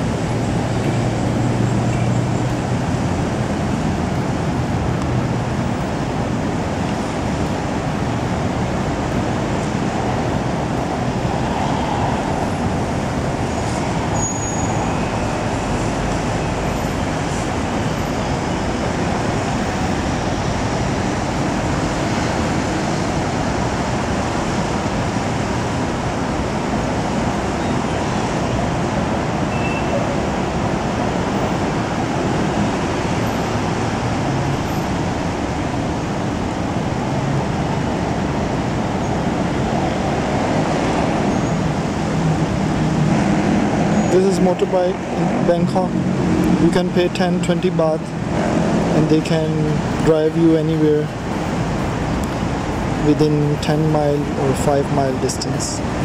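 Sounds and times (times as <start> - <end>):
city street traffic hum: 0.0 - 56.0.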